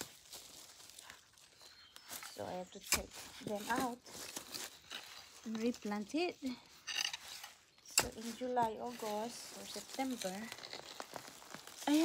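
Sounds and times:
rustling soil and leaves: 0.0 - 12.0.

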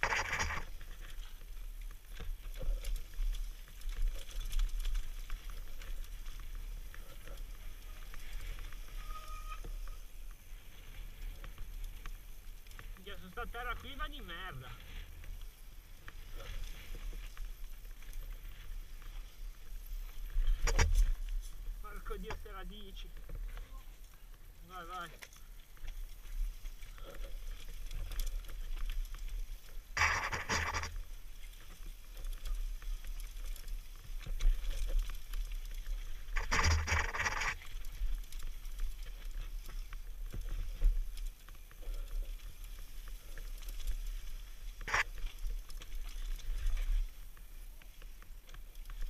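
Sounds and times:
bike rattling over rocks: 0.0 - 49.0.

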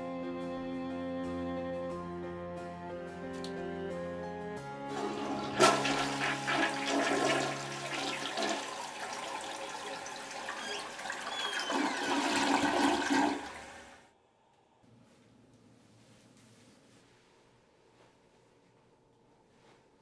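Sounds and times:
toilet water rushing: 4.9 - 14.0.

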